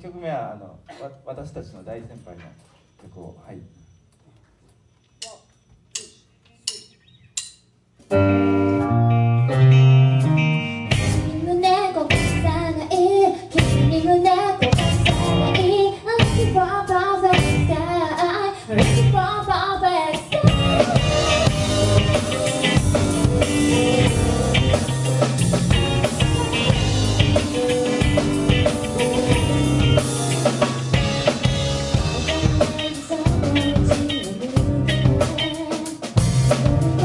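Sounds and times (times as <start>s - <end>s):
drumstick count-in clicks: 5.2s - 7.7s
bass: 5.2s - 37.0s
keyboard and electric guitar chords: 8.1s - 12.7s, 13.6s - 17.9s, 20.2s - 37.0s
drum kit: 9.8s - 11.4s, 12.1s - 16.6s, 17.3s - 17.8s, 18.7s - 19.3s, 20.1s - 37.0s
woman singing: 11.3s - 23.2s, 32.3s - 37.0s.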